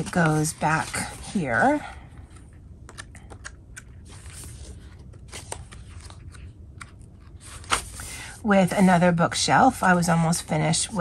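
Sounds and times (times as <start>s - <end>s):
notebook pages flipping: 0.0s - 1.7s, 2.3s - 8.3s.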